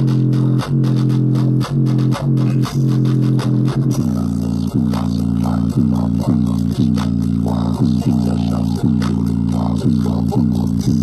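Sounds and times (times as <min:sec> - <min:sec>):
bass-heavy music from speaker: 0:00.0 - 0:11.0.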